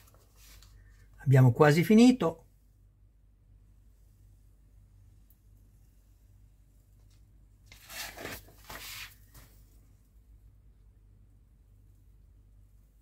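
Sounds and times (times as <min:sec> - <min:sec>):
magazine pages turning: 0:00.0 - 0:00.8, 0:07.1 - 0:09.7.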